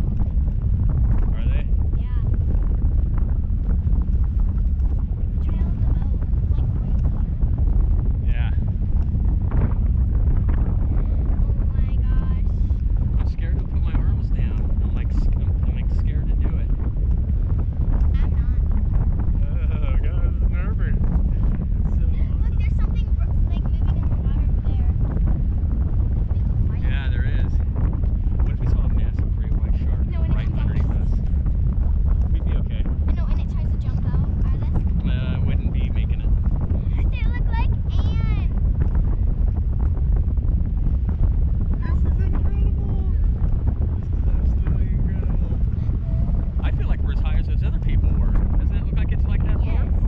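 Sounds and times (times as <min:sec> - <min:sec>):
heavy wind buffeting microphone: 0:00.0 - 0:50.0.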